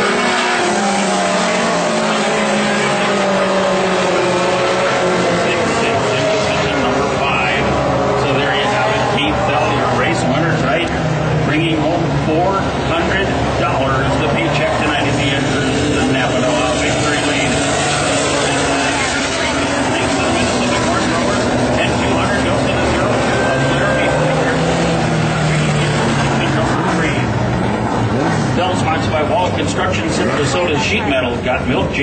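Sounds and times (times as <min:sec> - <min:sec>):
race car engines running: 0:00.0 - 0:32.0
voices: 0:00.4 - 0:27.3, 0:28.5 - 0:32.0.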